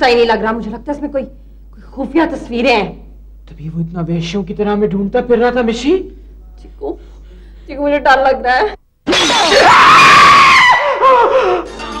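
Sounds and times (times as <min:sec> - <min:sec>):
man and woman screaming: 0:09.1 - 0:11.5.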